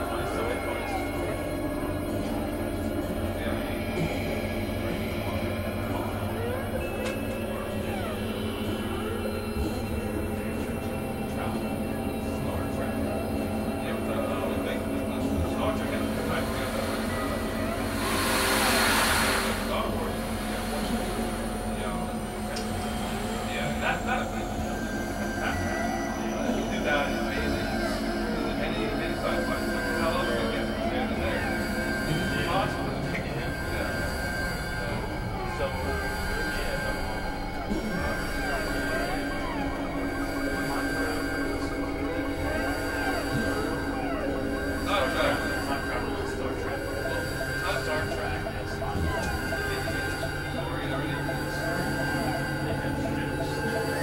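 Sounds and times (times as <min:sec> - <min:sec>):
synthesizer drone music: 0:00.0 - 0:54.0
swell of hiss: 0:17.9 - 0:19.7.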